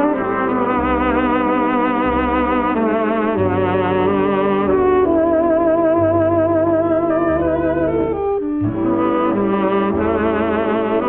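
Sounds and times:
swing band brass music: 0.0s - 11.0s.

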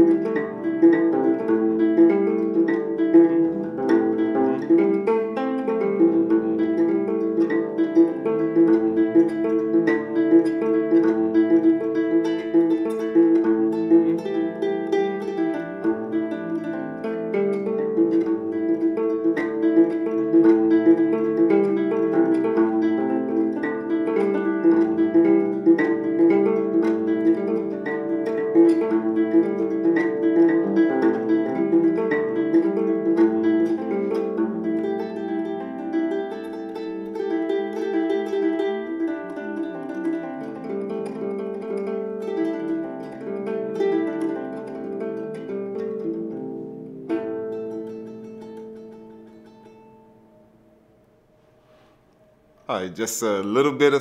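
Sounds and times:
harp plucked in a repeating melody: 0.0s - 50.9s.

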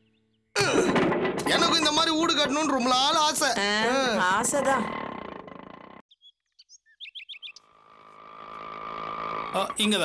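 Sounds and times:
birds chirping: 1.5s - 8.8s.

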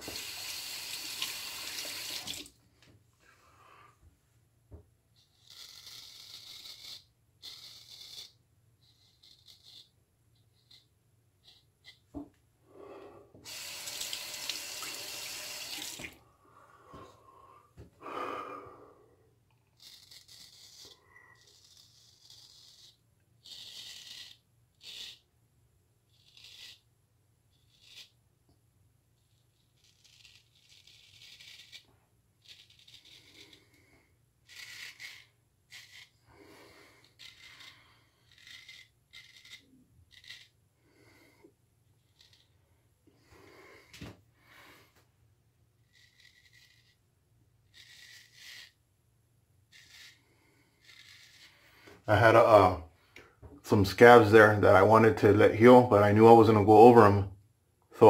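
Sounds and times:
razor scraping stubble: 5.2s - 12.0s, 19.7s - 25.2s, 29.3s - 33.8s, 34.4s - 40.6s, 45.8s - 47.0s, 47.6s - 48.8s, 49.7s - 51.8s.

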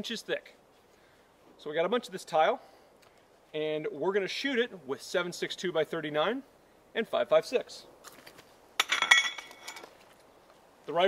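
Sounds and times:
hard object clinking and ringing: 8.8s - 9.9s.

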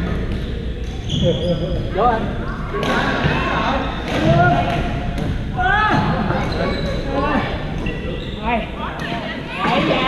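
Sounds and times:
players' voices echoing: 0.0s - 10.0s
shoe squeaks on court: 0.8s - 1.8s, 7.8s - 8.6s.

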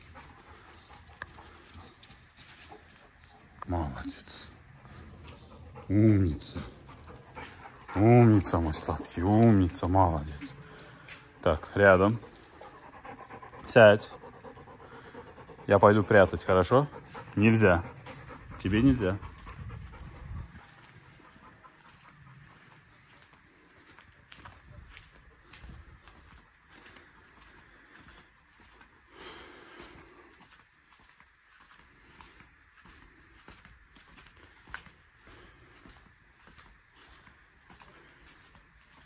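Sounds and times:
dog panting: 0.0s - 30.7s, 31.7s - 39.0s
footsteps on concrete: 4.6s - 13.7s, 16.9s - 39.0s.

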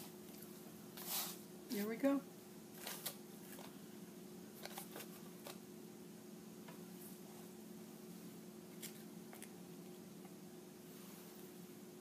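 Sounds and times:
steady low hum: 0.0s - 12.0s
paper cutouts rustling: 4.6s - 5.6s.

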